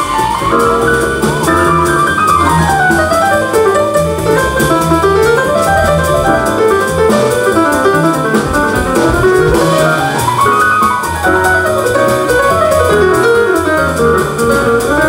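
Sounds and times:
drums: 0.0s - 15.0s
piano runs: 0.0s - 15.0s
upright bass: 0.0s - 15.0s.

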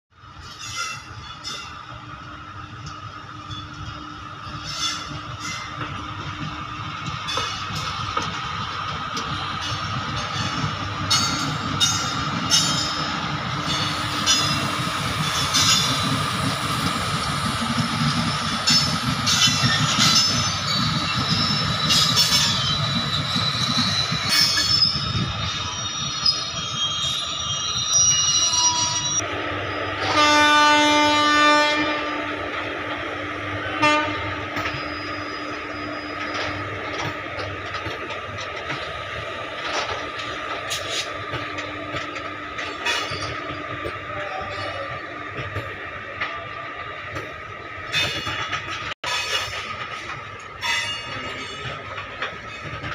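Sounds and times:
freight train rumbling past: 0.2s - 52.9s
wheels squealing: 9.6s - 29.2s
train horn blast: 30.0s - 32.3s, 33.8s - 34.6s
wheels clicking over rail joints: 47.9s - 52.9s.

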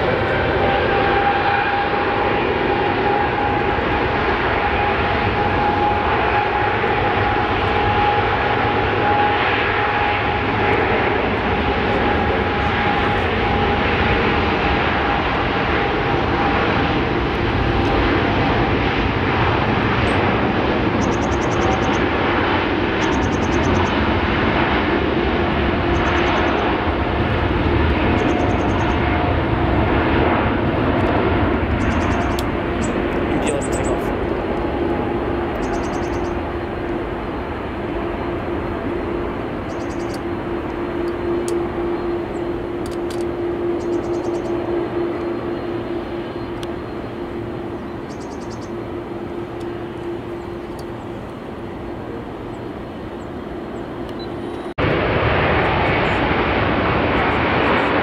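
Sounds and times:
jet engines at take-off power: 0.0s - 58.0s.

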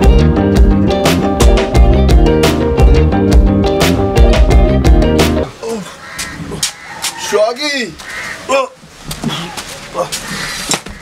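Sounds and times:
background music: 0.0s - 5.6s
crow cawing: 5.7s - 11.0s.

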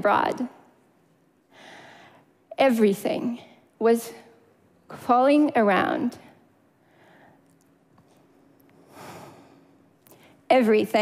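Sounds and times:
woman speaking: 0.0s - 0.6s, 2.5s - 4.3s, 4.9s - 6.3s, 10.5s - 11.0s
steady low hum: 0.0s - 11.0s.

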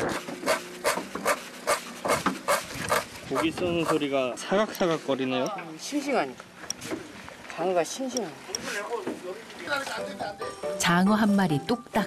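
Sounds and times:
knife chopping on wooden board: 0.0s - 4.0s.

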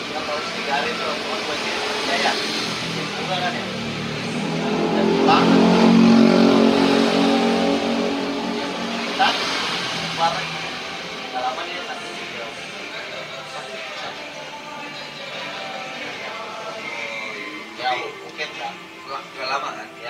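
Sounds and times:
passing vehicle engine hum: 0.0s - 13.8s.

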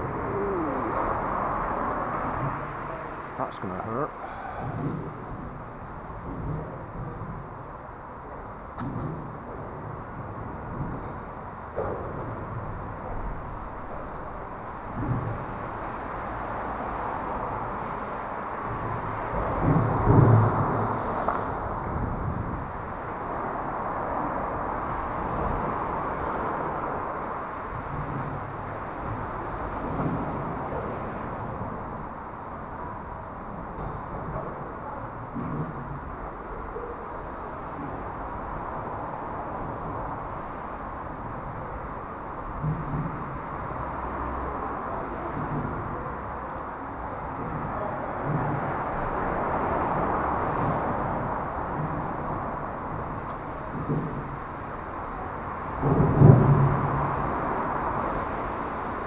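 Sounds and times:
outdoor background rumble: 0.0s - 59.0s.

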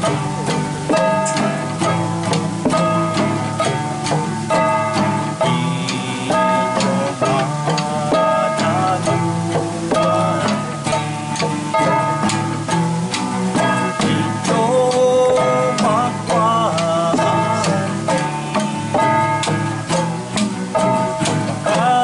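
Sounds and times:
man singing: 0.0s - 3.8s, 4.5s - 12.4s, 13.5s - 20.2s, 20.8s - 22.0s
classical guitar strumming: 0.0s - 22.0s.

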